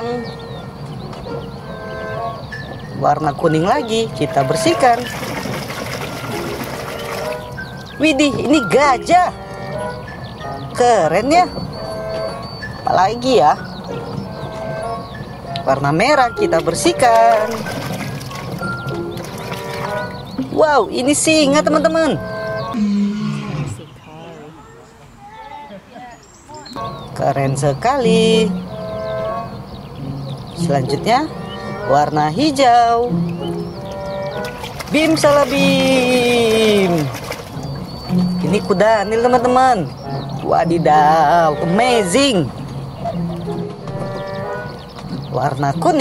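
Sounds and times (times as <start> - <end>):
water sloshing and splashing: 0.8 - 10.1, 10.7 - 22.8, 28.2 - 46.0
lion roaring: 22.8 - 23.9.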